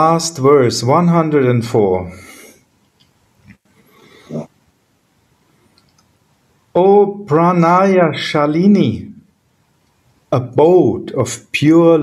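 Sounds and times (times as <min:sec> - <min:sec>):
faint breath: 0:02.2 - 0:02.7, 0:03.8 - 0:04.5.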